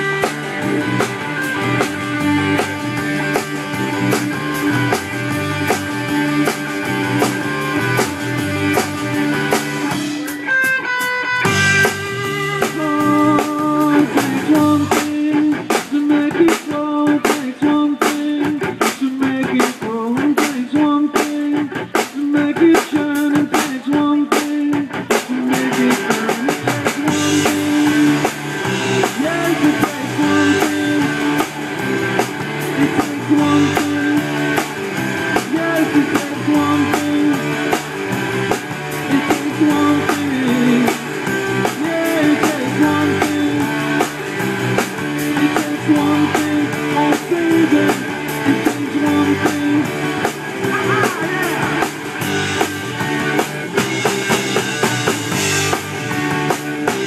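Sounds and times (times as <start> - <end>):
electric guitar riff: 0.0 - 20.7, 21.3 - 57.0
bass guitar: 0.0 - 57.0.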